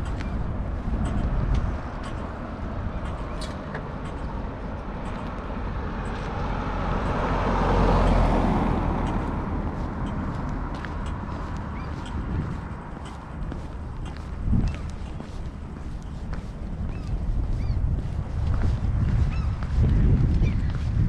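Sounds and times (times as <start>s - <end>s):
car passing: 0.0s - 21.0s
low rumble of traffic: 0.0s - 21.0s.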